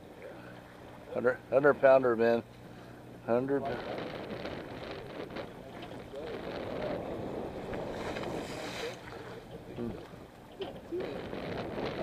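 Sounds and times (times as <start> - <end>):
low hum: 0.0 - 12.0
sea noise: 0.0 - 12.0
wind: 0.0 - 12.0.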